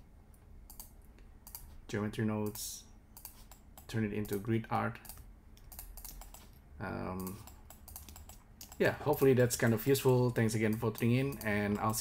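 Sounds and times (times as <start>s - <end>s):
faint steady low hum: 0.0s - 12.0s
computer mouse and keyboard clicks: 0.7s - 1.8s, 3.2s - 8.8s, 9.6s - 12.0s.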